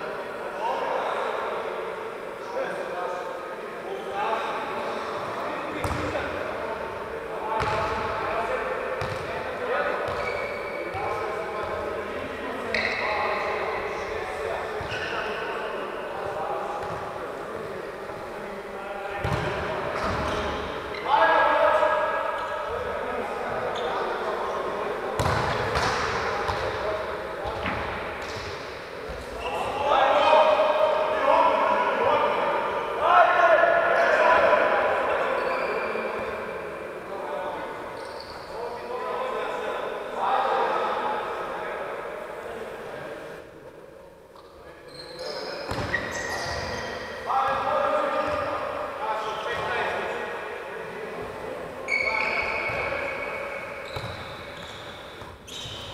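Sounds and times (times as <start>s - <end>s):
shoes squeaking on wooden floor: 10.1s - 10.9s, 51.9s - 53.2s, 53.8s - 55.9s.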